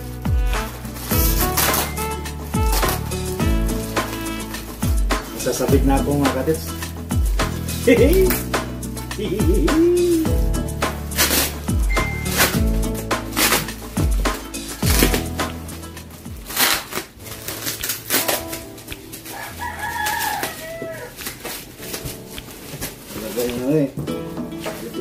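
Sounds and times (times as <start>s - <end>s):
music with deep sliding bass: 0.0s - 19.2s
bubble wrap crinkling: 0.0s - 25.0s
rooster crowing: 19.2s - 21.4s.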